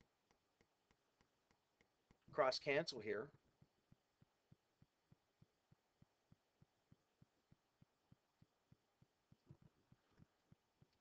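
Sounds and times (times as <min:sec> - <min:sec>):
soft regular ticking: 0:00.0 - 0:11.0.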